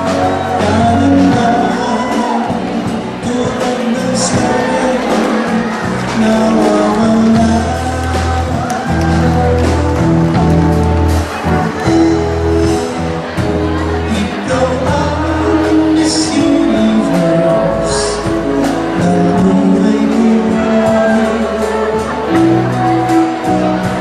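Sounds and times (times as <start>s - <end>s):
man singing into a microphone: 0.0s - 9.8s, 11.8s - 24.0s
drums: 0.0s - 24.0s
keyboard: 0.0s - 24.0s.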